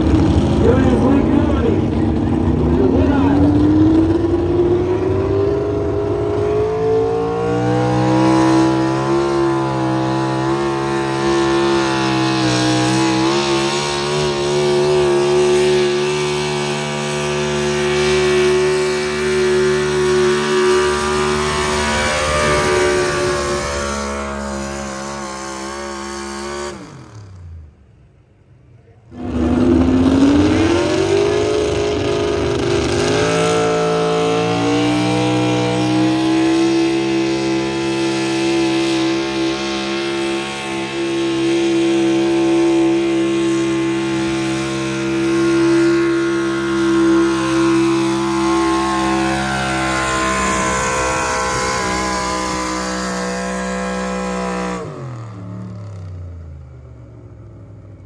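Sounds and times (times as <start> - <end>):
vehicle engine revving: 0.0 - 28.0, 29.1 - 58.0.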